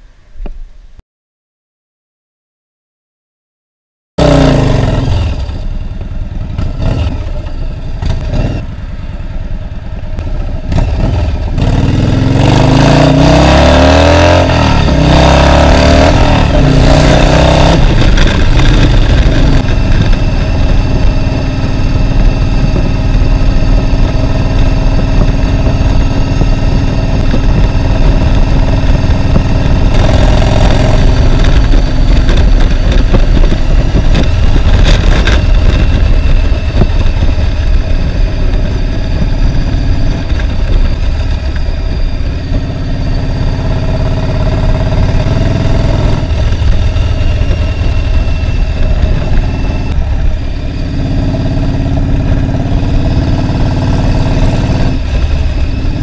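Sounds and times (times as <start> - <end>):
motorcycle engine revving: 4.2 - 56.0.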